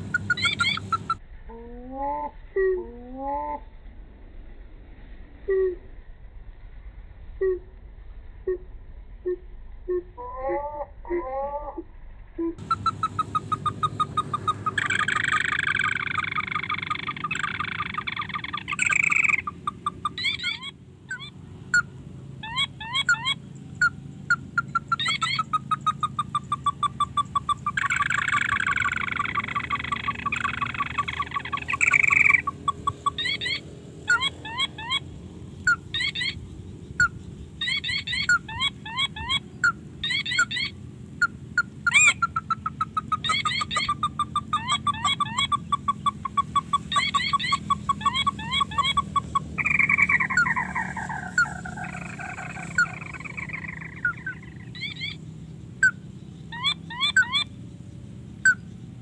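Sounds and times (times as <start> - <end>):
quick bird chirping: 0.0 - 1.2, 12.4 - 59.0
harsh buzzing call: 12.5 - 35.1, 37.0 - 55.2.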